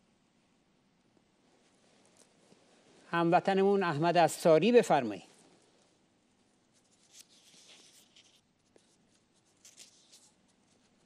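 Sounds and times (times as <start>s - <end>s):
faint scratchy rustles: 1.2s - 3.2s, 5.2s - 11.0s.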